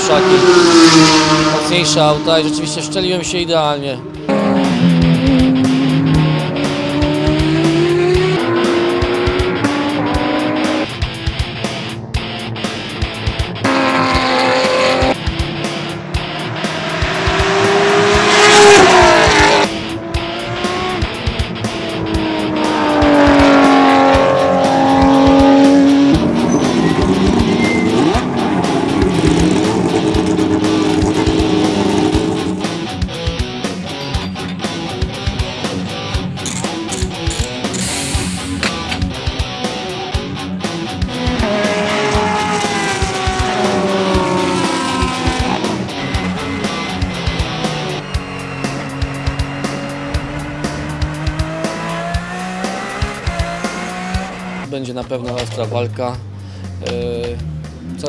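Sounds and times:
race car engine at full throttle: 0.0s - 58.0s.

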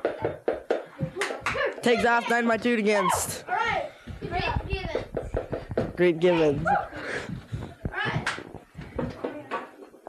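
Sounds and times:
voices talking and shouting: 0.0s - 9.7s
wrestlers scuffling in ring: 3.6s - 10.0s.

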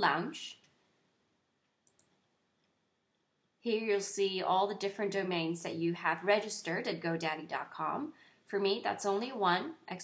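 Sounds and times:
computer mouse clicks: 1.6s - 3.3s.

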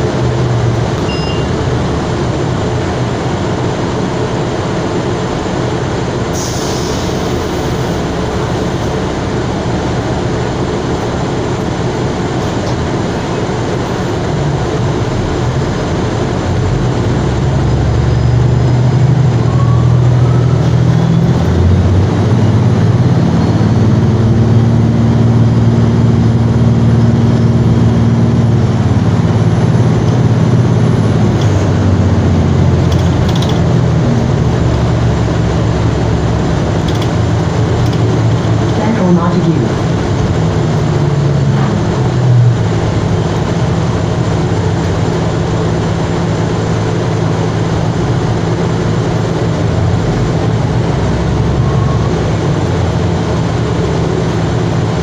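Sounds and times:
bus running noise: 0.0s - 55.0s
low drivetrain hum: 0.0s - 55.0s.

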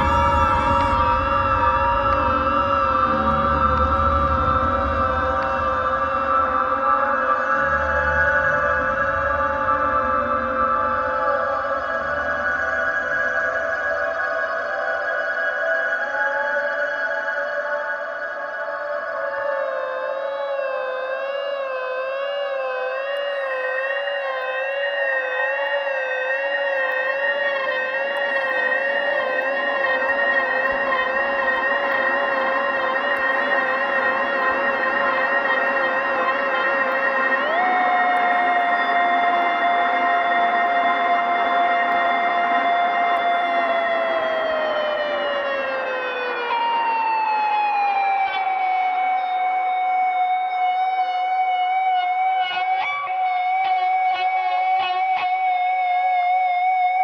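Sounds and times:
violin long notes: 0.0s - 12.8s
sustained electric guitar: 0.0s - 13.6s.

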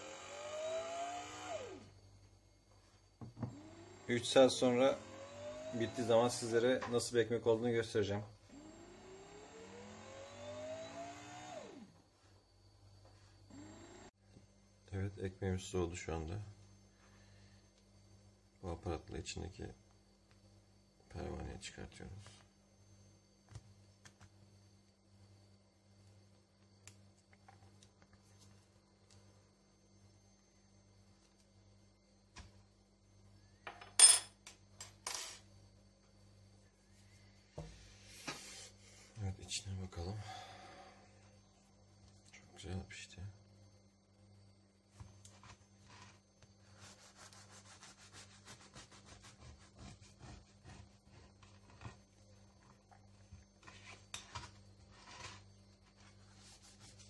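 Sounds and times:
bread maker motor whine: 0.0s - 7.0s, 8.2s - 12.4s, 13.0s - 14.2s.

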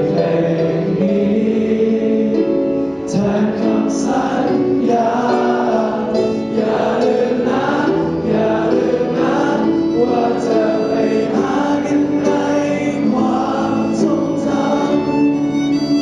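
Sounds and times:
choir singing a hymn: 0.0s - 16.0s
small band with violin: 0.0s - 16.0s.

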